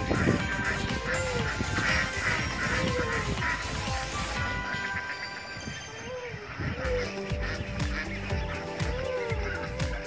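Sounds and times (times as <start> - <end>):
background music: 0.0 - 10.0
ducks quacking: 0.0 - 10.0.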